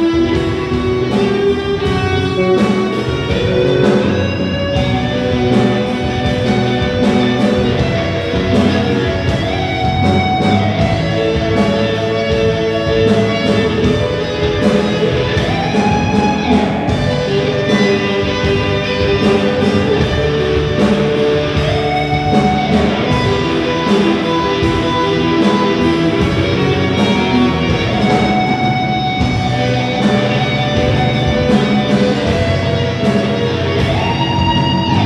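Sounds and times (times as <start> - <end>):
drum kit groove: 0.0 - 35.0
electric guitars: 0.0 - 35.0
lead guitar note sliding up: 0.0 - 35.0.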